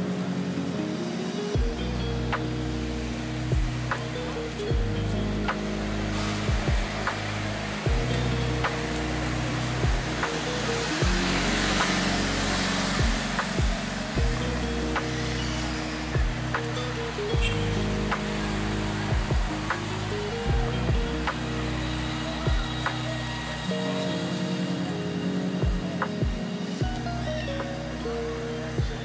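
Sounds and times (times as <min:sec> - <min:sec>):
music with low chords: 0:00.0 - 0:29.0
street noise hiss: 0:00.0 - 0:29.0
deep falling-pitch hits: 0:04.7 - 0:08.8, 0:11.0 - 0:16.7.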